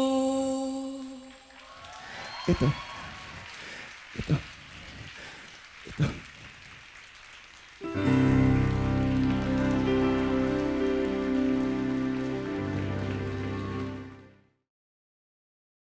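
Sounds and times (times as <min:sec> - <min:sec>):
audience applause: 0:01.4 - 0:14.4
music sting of held chords: 0:07.8 - 0:14.4.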